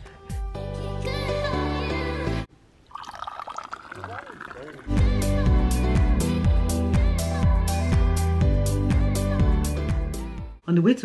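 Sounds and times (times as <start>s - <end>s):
music: 0.0s - 2.5s, 4.9s - 11.0s
tea pouring into a glass: 2.8s - 5.1s.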